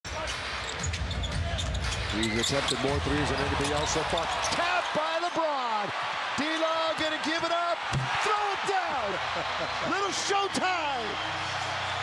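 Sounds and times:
sneaker squeaks: 0.6 - 4.6.

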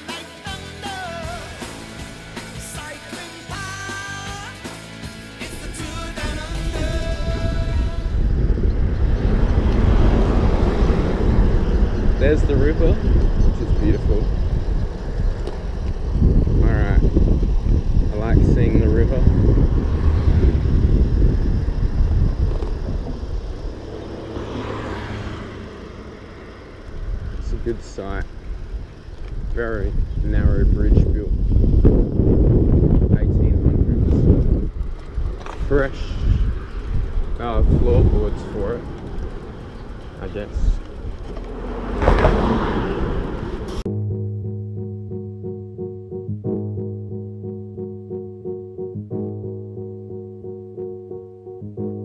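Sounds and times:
bicycle rolling noise: 5.4 - 43.9
wind buffeting microphone: 5.5 - 43.9
keyboard music: 43.8 - 52.0.

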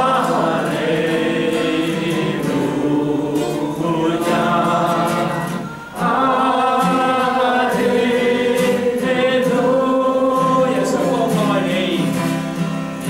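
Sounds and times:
congregation singing a hymn: 0.0 - 12.8
acoustic guitar: 0.0 - 13.0
man singing into a microphone: 6.0 - 12.3.

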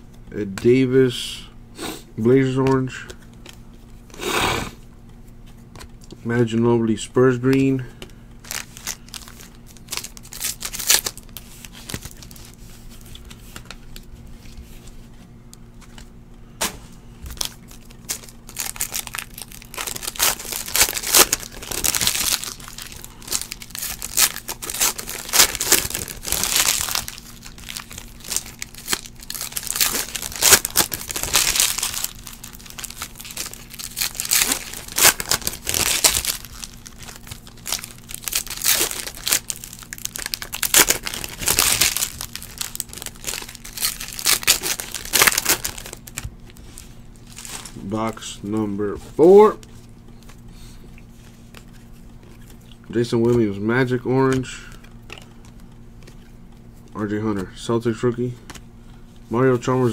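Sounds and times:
foil wrappers crinkling and tearing: 8.4 - 15.1, 17.2 - 58.6.

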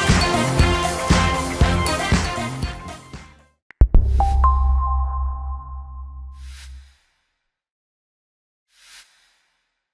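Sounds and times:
deep bass drone: 3.8 - 6.8
ringing chime tones: 4.2 - 6.4
whoosh: 6.0 - 7.1.

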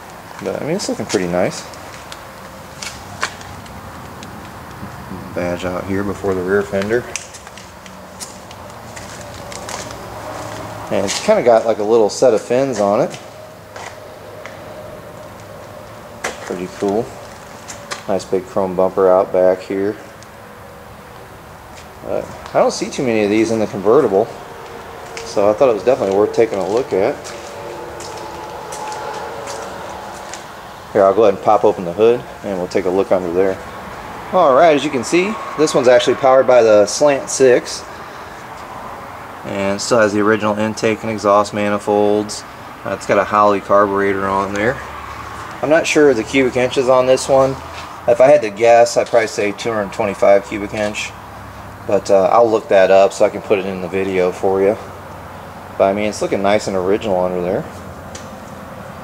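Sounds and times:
steady hum: 0.0 - 48.6
faint steady tones: 0.0 - 57.7.

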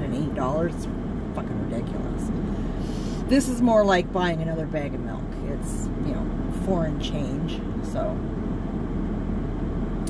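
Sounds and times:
car engine idling hum: 0.0 - 10.0
car heater blower running: 0.0 - 10.0.

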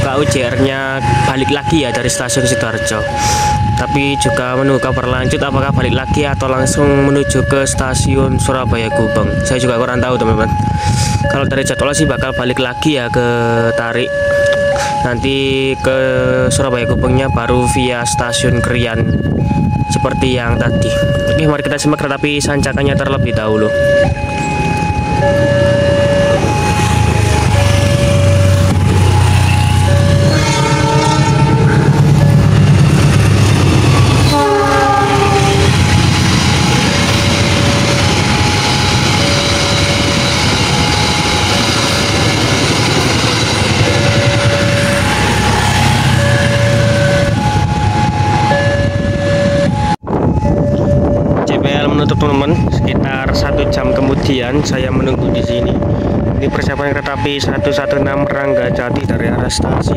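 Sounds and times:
diesel locomotive rumble: 0.0 - 59.9
level crossing two-tone signal: 19.9 - 55.8, 56.5 - 59.3
train horn: 30.1 - 32.0, 34.2 - 36.0.

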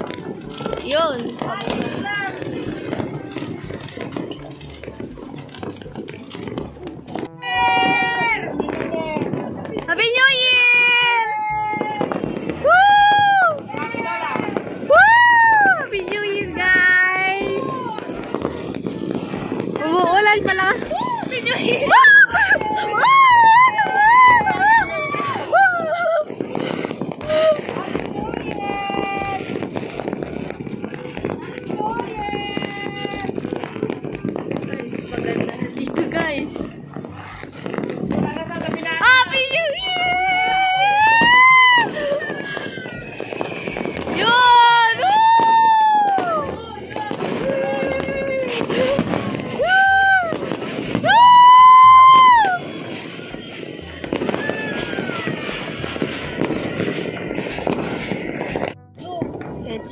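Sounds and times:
firecrackers and fireworks: 0.0 - 59.9
people shouting: 10.4 - 16.0, 20.9 - 34.9, 39.1 - 58.7.

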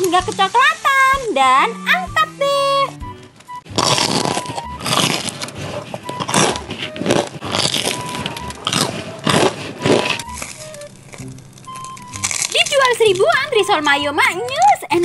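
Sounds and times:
faint background music: 0.0 - 15.0
crunchy bites and chewing: 3.7 - 13.3.

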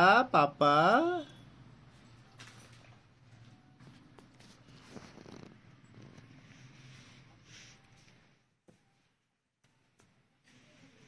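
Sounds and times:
baby chewing and sucking: 4.2 - 6.5.

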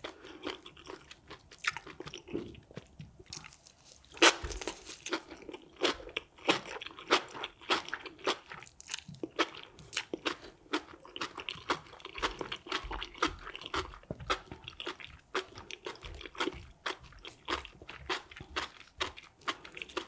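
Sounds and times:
person chewing crunchy food: 0.0 - 20.0.

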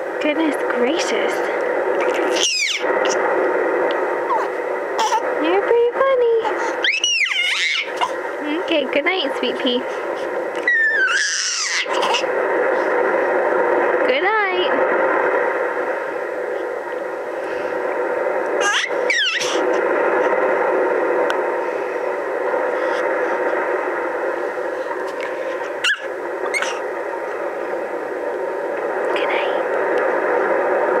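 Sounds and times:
baby squealing: 2.1 - 2.8, 6.7 - 8.2, 10.6 - 12.3, 18.6 - 19.6, 25.8 - 26.8.

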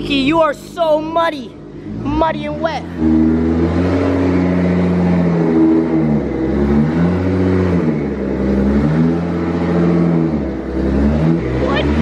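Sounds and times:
car engine revving hard: 1.6 - 12.0.

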